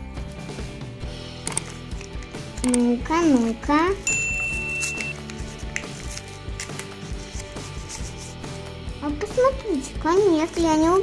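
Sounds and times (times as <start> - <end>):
quiet background music: 0.0 - 11.0
paper rustling and crinkling: 4.9 - 8.4.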